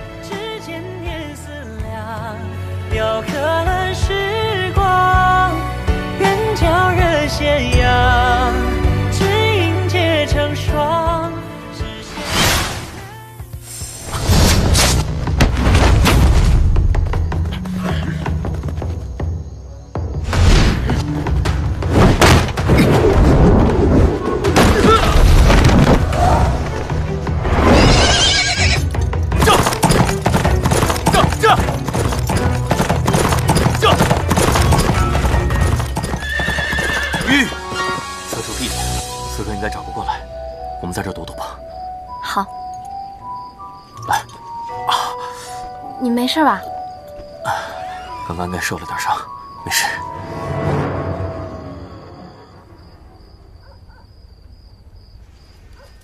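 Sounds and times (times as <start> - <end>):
background music: 0.0 - 52.6
crickets chirping: 16.5 - 21.9, 23.0 - 56.0
horse whinnying: 27.6 - 30.0, 35.6 - 38.3
horse hooves galloping: 28.4 - 38.6.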